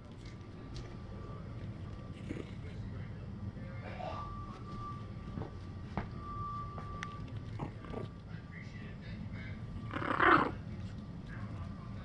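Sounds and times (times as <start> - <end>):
puppy growling: 2.1 - 2.8, 7.4 - 8.2, 9.7 - 11.8.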